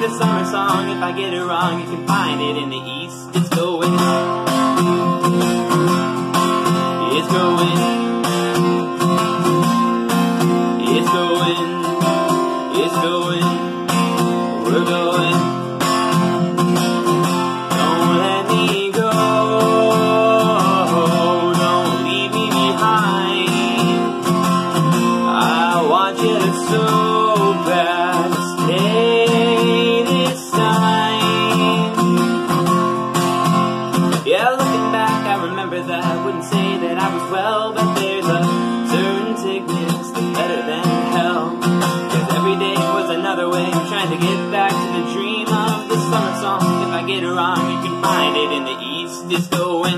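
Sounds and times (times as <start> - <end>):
acoustic guitar strumming: 0.0 - 49.9
man singing: 0.0 - 49.9.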